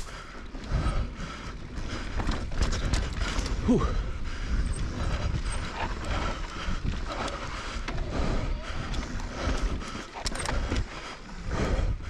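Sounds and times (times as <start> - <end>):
tyres rolling on loose dirt: 0.0 - 11.4
bike rattling over bumps: 0.0 - 12.0
wind buffeting microphone: 0.0 - 12.0.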